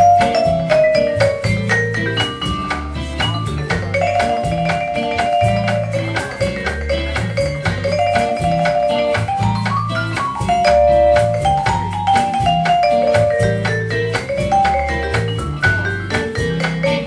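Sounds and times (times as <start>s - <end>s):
live band playing instrumental: 0.0s - 17.0s.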